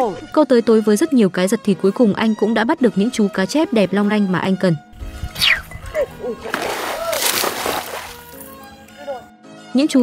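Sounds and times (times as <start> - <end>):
background music: 0.0 - 10.0
water splashing from thrashing fish: 6.4 - 8.6.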